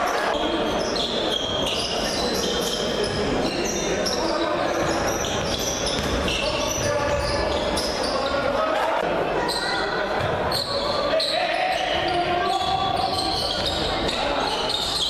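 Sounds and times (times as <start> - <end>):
sneaker squeaks: 0.0 - 8.7, 9.4 - 15.0
unintelligible voices: 0.0 - 15.0
basketball bouncing: 4.8 - 7.2.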